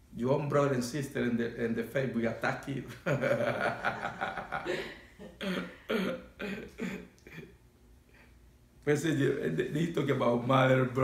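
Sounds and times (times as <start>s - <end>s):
man chuckling: 2.9s - 7.6s.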